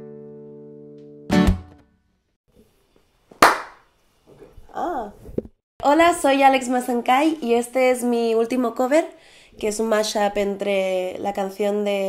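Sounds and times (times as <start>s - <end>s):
sharp clap-like smack: 3.4s - 3.8s.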